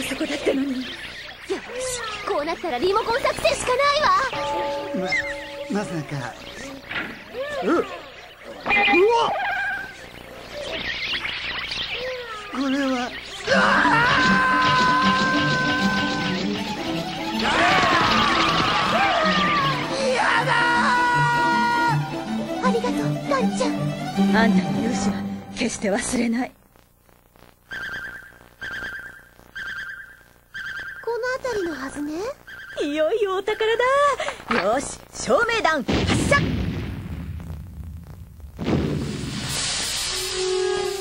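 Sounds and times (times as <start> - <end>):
cartoon mice squeaking: 0.0 - 4.4, 7.8 - 19.8, 27.7 - 34.2
fluttering electronic beep: 8.2 - 13.4.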